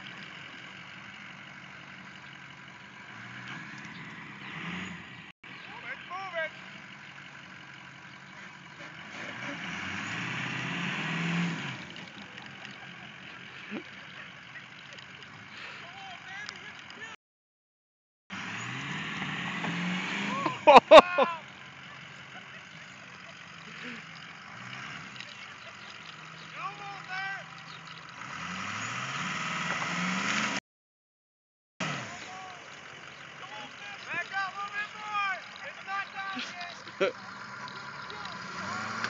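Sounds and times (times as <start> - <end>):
diesel truck engine revving: 0.0 - 17.2, 18.3 - 30.6, 31.8 - 39.0
voices calling out: 0.0 - 17.2, 18.4 - 29.3, 31.8 - 39.0
loud shouts: 5.7 - 6.6, 20.3 - 21.5, 26.5 - 27.5, 32.1 - 32.6, 33.4 - 36.8.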